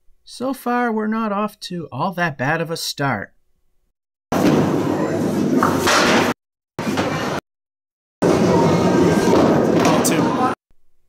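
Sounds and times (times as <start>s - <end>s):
bowling ball rolling down lane: 4.4s - 7.4s, 8.2s - 10.4s
loud hall noise: 4.4s - 7.4s, 8.2s - 10.6s
ball striking pins: 5.6s - 7.3s.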